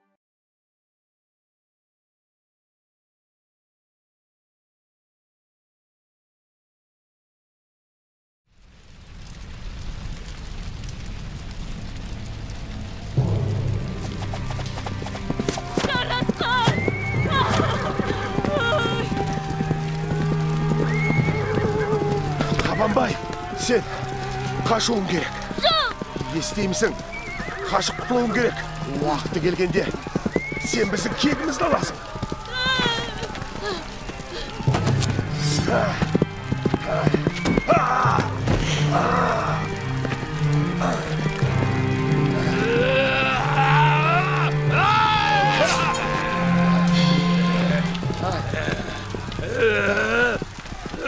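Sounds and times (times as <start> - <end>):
hooves clattering: 13.8 - 51.0
galloping hoofbeats: 13.9 - 43.1, 45.9 - 51.0
people shouting: 14.8 - 51.0
horses neighing: 15.0 - 51.0.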